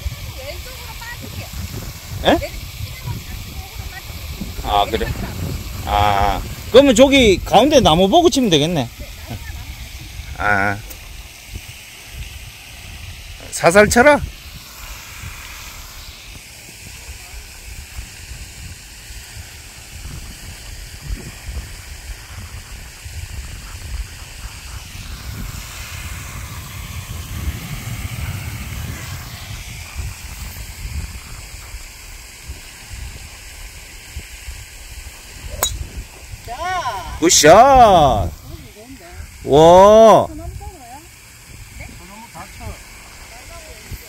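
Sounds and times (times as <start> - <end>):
faint hiss: 0.0 - 44.0
wind rumble on microphone: 0.0 - 44.0
golf club striking ball: 35.5 - 36.0.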